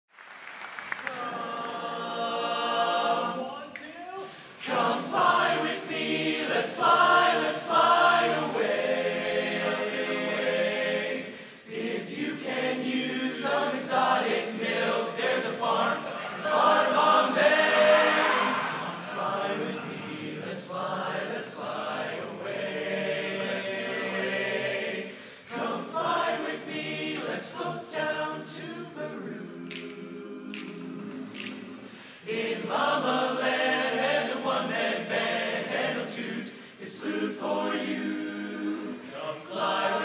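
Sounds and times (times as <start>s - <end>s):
a cappella chorus singing: 1.0s - 40.0s.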